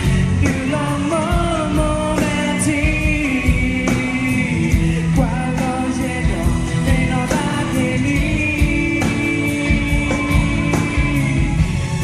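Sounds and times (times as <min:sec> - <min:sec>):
electric guitar: 0:00.0 - 0:12.0
man singing into a microphone: 0:00.0 - 0:12.0
steady drum beat: 0:00.0 - 0:12.0.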